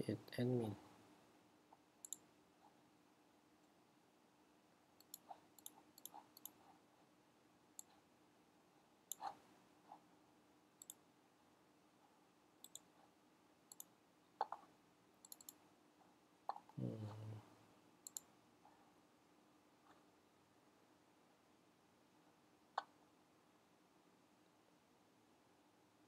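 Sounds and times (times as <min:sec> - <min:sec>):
faint steady hum: 0:00.0 - 0:26.0
mouse and keyboard clicks: 0:02.0 - 0:02.3, 0:05.0 - 0:06.6, 0:09.1 - 0:09.4, 0:10.8 - 0:11.0, 0:12.6 - 0:12.9, 0:13.7 - 0:15.6, 0:18.0 - 0:18.3.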